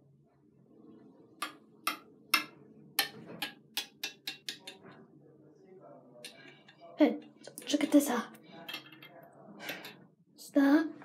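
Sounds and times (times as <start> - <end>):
plastic toy tapping ceramic basin: 1.4 - 4.9.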